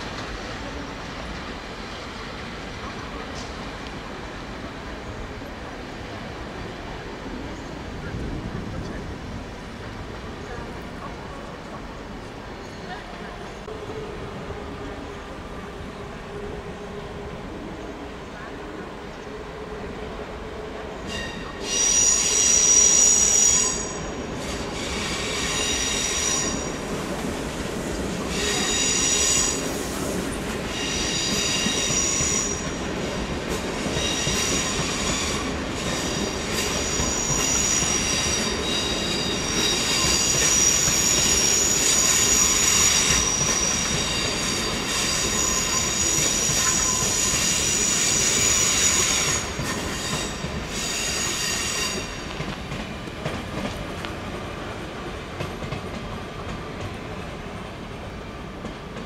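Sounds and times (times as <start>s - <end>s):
rolling train rumble: 0.0s - 59.0s
train wheels squealing: 21.0s - 27.0s, 27.9s - 52.5s.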